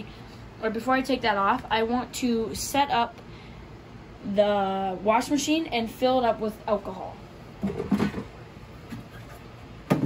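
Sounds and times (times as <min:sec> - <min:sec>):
plastic cover knocking: 0:07.6 - 0:08.3.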